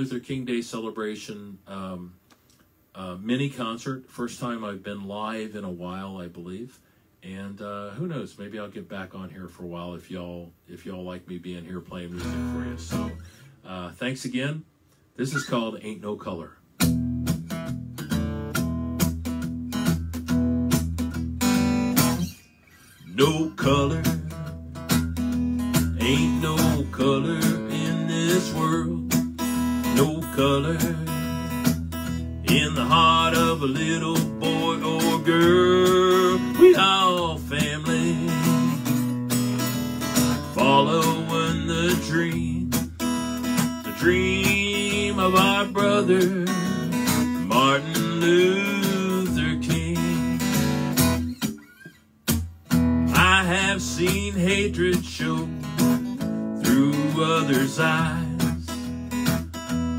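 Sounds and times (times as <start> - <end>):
acoustic guitar strummed and picked: 10.9 - 59.9
man singing: 11.7 - 14.0, 23.1 - 24.6, 25.8 - 38.9, 40.4 - 43.0, 43.8 - 50.7, 53.1 - 58.9.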